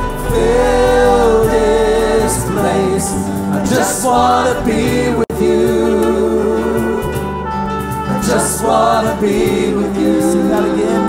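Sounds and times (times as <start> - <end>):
band accompaniment: 0.0 - 11.0
group singing worship song: 0.0 - 11.0.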